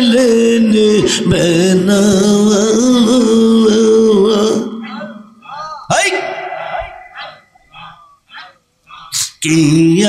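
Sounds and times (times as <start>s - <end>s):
man's quiet vocal sounds: 7.8s - 9.5s.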